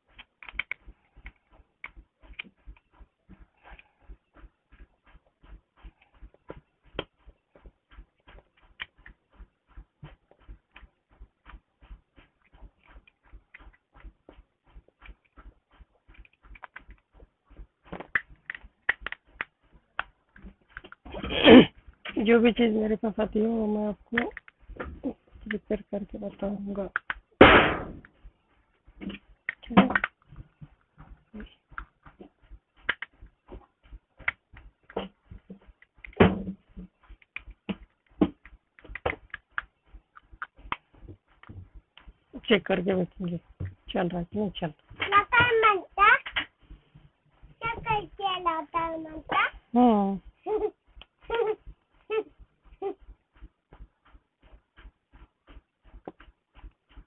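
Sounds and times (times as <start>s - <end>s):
steady regular ticking: 0.0s - 57.0s
loud irregular clicks: 0.1s - 2.6s, 17.9s - 20.1s, 32.8s - 33.2s.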